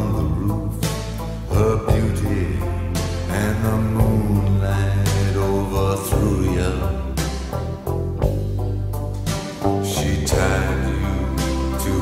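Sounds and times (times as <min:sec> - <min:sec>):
steady low bass: 0:00.0 - 0:12.0.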